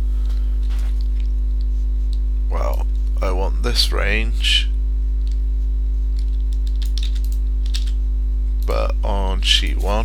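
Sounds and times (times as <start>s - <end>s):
low mains hum: 0.0s - 10.0s.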